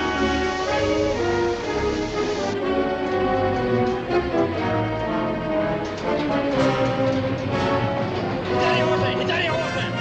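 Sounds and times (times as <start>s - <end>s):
orchestral strings and brass: 0.0s - 10.0s.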